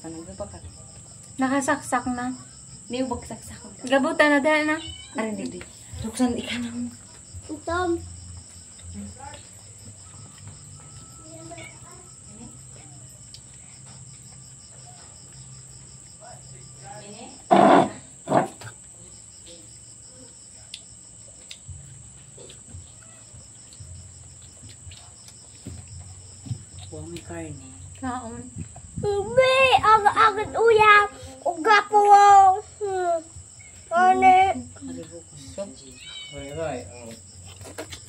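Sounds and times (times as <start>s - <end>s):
crickets trilling: 0.0s - 38.0s.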